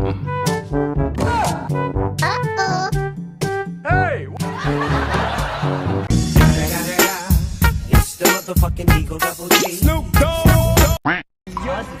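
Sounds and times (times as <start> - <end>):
person speaking: 2.2 - 3.0
background music with a beat: 4.4 - 11.0.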